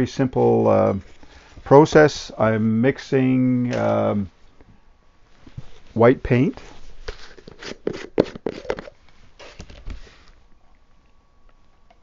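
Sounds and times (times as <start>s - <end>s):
plastic jar lid twisting open: 7.3s - 9.9s.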